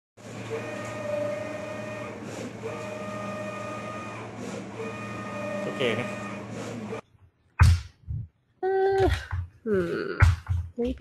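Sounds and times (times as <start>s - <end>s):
cutting plotter motor whine: 0.2s - 7.0s.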